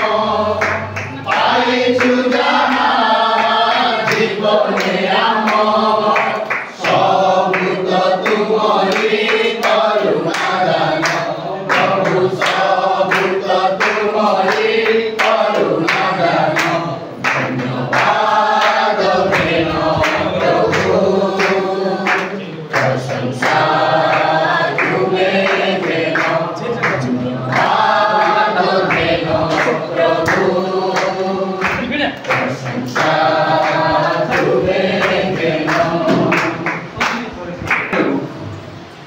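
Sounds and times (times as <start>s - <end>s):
hand claps: 0.0s - 38.3s
congregation singing a hymn: 0.0s - 39.0s.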